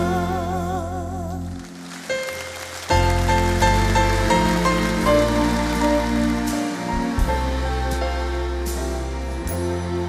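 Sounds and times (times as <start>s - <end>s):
grand piano: 0.0s - 10.0s
string orchestra playing: 1.6s - 10.0s
sustained bass notes: 3.0s - 10.0s.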